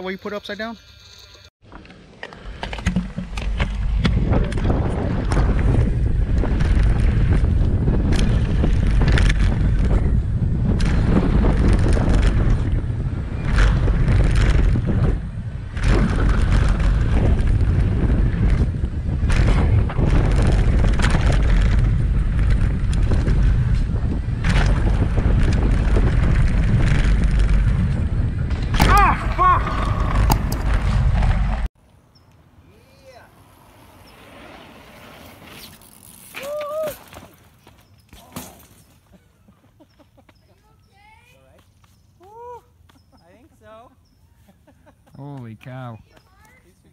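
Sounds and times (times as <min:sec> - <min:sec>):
bike knocking and rattling: 0:01.6 - 0:31.7
wind rushing over microphone: 0:02.8 - 0:31.7.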